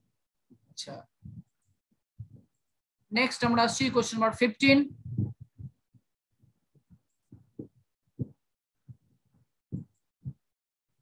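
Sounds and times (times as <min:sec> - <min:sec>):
faint low thumps: 0:01.2 - 0:01.6, 0:02.2 - 0:02.5, 0:03.4 - 0:06.0, 0:06.8 - 0:09.1, 0:09.7 - 0:10.4.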